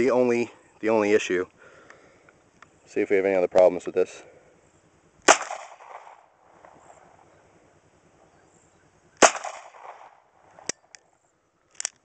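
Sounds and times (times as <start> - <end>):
pistol shots with echo: 5.2 - 6.2, 9.2 - 10.2.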